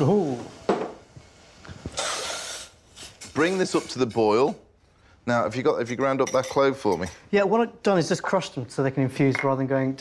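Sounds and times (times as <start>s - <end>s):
brief hiss: 1.8s - 3.4s.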